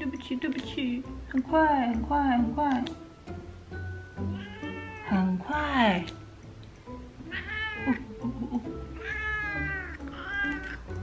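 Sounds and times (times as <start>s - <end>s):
cat meowing: 4.3s - 5.3s, 7.3s - 8.1s, 9.0s - 11.0s.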